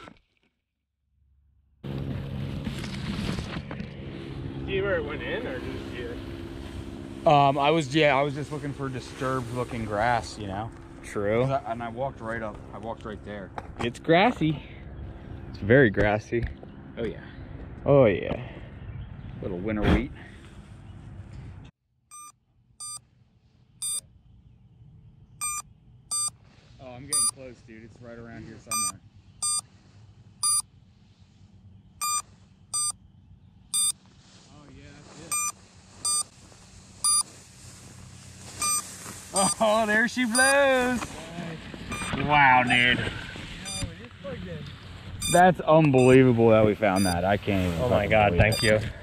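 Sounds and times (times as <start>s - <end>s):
shrill electronic beeps: 22.1s - 23.0s, 23.8s - 24.0s, 25.4s - 26.3s, 27.1s - 27.3s, 28.7s - 29.6s, 30.4s - 30.6s, 32.0s - 33.0s, 33.7s - 34.0s, 35.3s - 36.3s, 37.0s - 37.2s, 38.6s - 40.7s, 41.9s - 42.9s, 43.6s - 43.9s, 45.2s - 46.2s, 46.9s - 47.2s, 48.5s - 48.8s
rustling: 26.2s - 33.0s, 33.8s - 48.8s.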